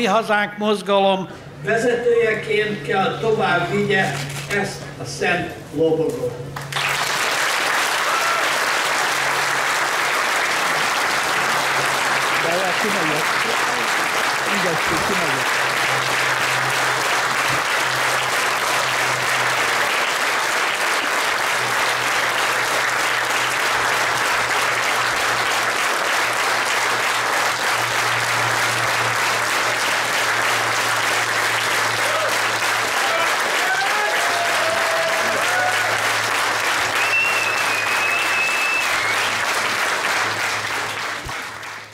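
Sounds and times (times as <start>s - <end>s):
large audience applauding: 6.5s - 41.9s.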